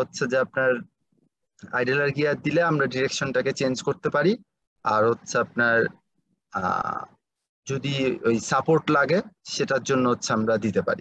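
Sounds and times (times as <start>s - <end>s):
man speaking: 0.0s - 1.0s, 1.6s - 11.0s.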